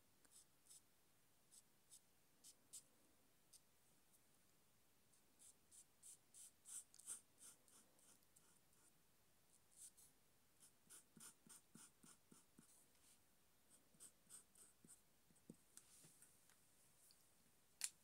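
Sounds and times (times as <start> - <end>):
marker pen scratching on paper: 5.4 - 8.9, 9.8 - 12.8, 13.7 - 15.0.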